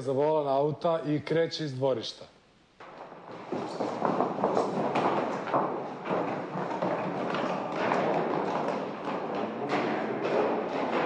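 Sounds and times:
hurried footsteps on stairs: 0:02.8 - 0:11.0.

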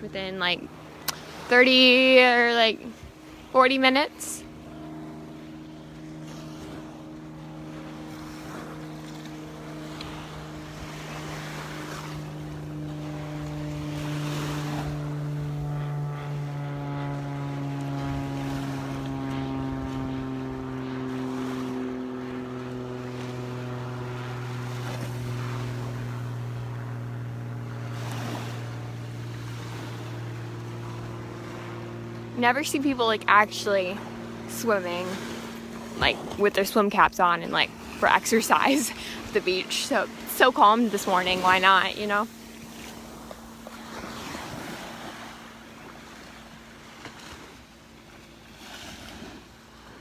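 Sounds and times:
engine hum passing by: 0:00.0 - 0:50.0.

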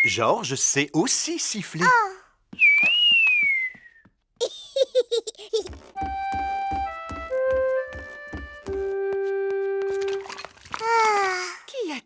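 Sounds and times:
cartoon keyboard music: 0:06.0 - 0:10.3.

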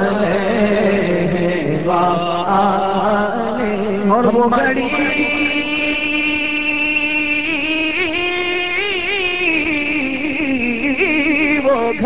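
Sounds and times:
man singing a long note: 0:00.0 - 0:08.2.

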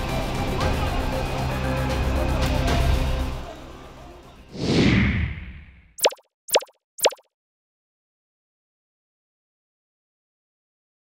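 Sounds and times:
quick pops dropping in pitch: 0:06.0 - 0:07.2.

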